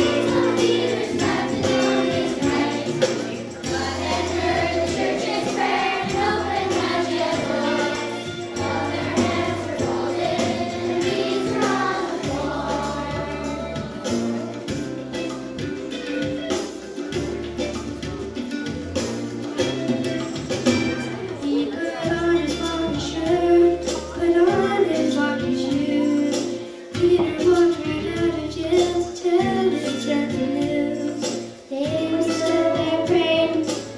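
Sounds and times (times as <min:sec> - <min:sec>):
children's choir singing: 0:00.0 - 0:14.6, 0:21.4 - 0:27.7, 0:31.8 - 0:33.9
instrumental accompaniment with beat: 0:00.0 - 0:33.9.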